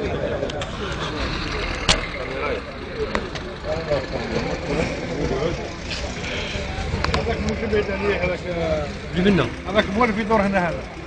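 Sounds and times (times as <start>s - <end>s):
people talking: 0.0s - 11.0s
vehicle engine rumbling: 0.0s - 11.0s.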